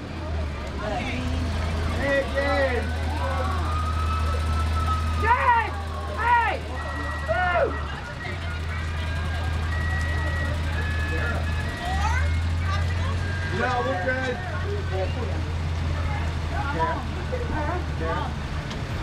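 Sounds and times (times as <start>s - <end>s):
vehicles rumbling on wet street: 0.0s - 19.0s
people calling out: 0.8s - 15.2s.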